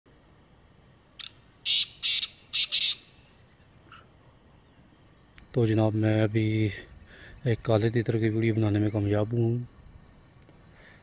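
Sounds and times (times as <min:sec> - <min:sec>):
francolin calling: 0:01.1 - 0:05.6.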